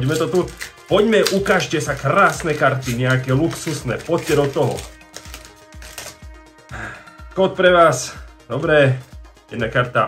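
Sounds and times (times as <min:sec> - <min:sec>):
foil pack crinkling open: 0:00.0 - 0:06.3
soft background music: 0:00.0 - 0:10.0.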